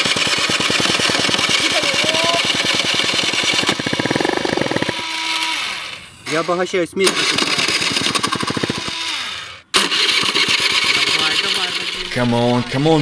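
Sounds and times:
scooter engine cranking: 0.0s - 5.8s, 7.1s - 13.0s.

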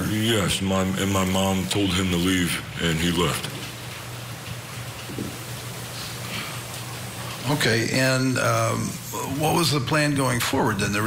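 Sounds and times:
low electrical hum: 0.0s - 11.0s
steady hiss: 0.0s - 11.0s.

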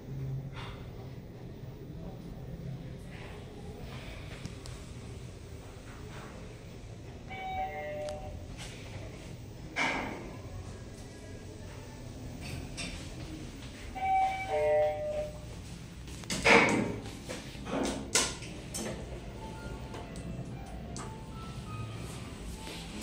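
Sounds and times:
elevator running hum: 0.0s - 23.0s.

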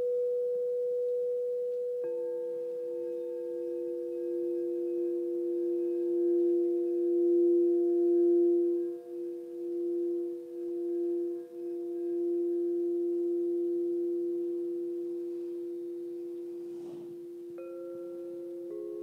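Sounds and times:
crystal singing bowl ringing: 0.0s - 19.0s.

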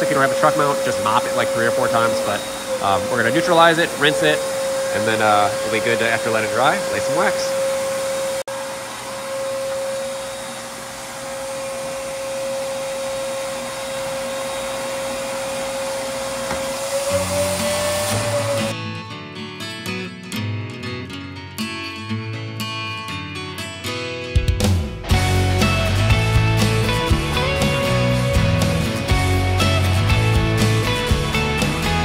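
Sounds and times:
floor machine whining: 0.0s - 18.8s
background guitar music: 18.0s - 32.0s.

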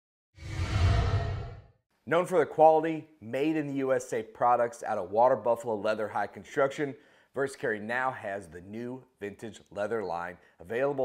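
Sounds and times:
deep rumble: 0.4s - 1.7s
cinematic whoosh: 0.4s - 1.8s.

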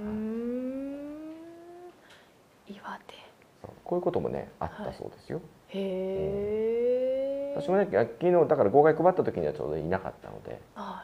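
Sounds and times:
person's drawn-out rising hum: 0.0s - 2.1s, 5.8s - 7.9s.

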